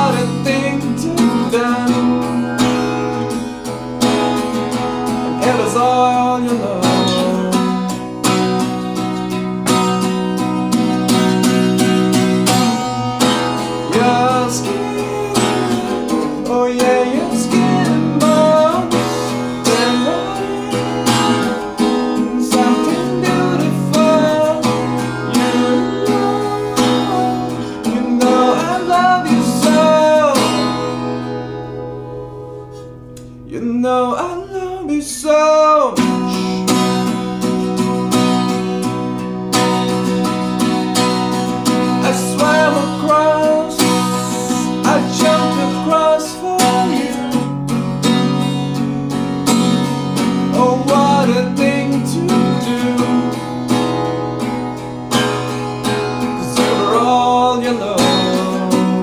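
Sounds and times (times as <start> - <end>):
man singing: 0.0 - 3.1, 5.3 - 8.2, 12.7 - 31.4, 33.4 - 36.8, 41.7 - 47.5, 50.4 - 54.0, 55.8 - 59.0
acoustic guitar strumming: 0.0 - 59.0.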